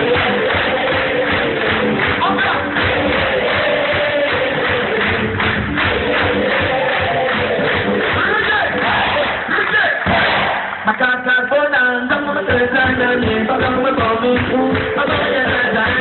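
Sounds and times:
voices singing: 0.0s - 9.5s
drums: 0.0s - 10.9s, 12.1s - 16.0s
live band music: 10.0s - 16.0s.

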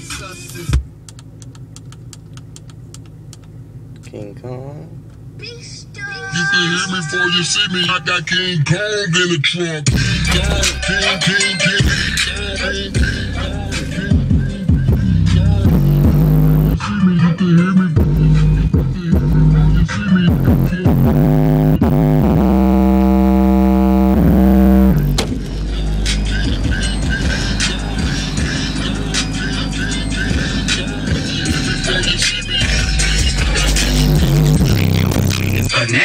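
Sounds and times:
hip-hop with rap vocals: 0.0s - 0.8s, 4.1s - 36.0s
heavy bass: 9.8s - 17.2s, 17.9s - 35.9s
buzzing synth note: 15.7s - 16.8s, 20.9s - 25.2s.

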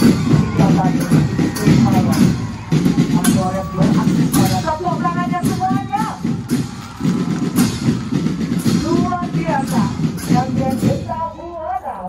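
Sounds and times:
bass and snare drums beating: 0.0s - 11.8s.

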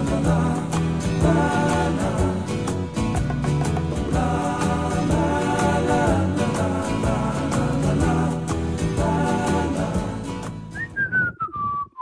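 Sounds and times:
song backing music: 0.0s - 10.9s
person whistling a tune: 10.7s - 12.0s.

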